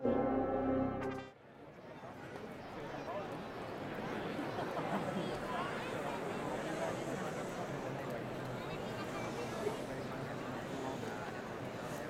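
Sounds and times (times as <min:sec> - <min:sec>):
brass ensemble chord: 0:00.0 - 0:01.4
faint crowd noise: 0:00.0 - 0:12.0.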